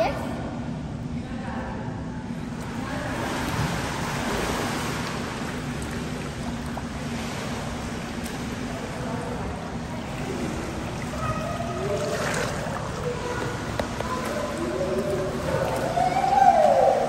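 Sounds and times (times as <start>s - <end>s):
pool water rushing and splashing: 2.3s - 17.0s.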